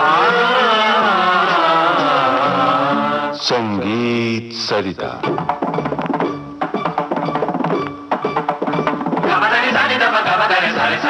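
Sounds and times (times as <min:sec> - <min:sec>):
person singing with accompaniment: 0:00.0 - 0:05.6, 0:08.8 - 0:11.0.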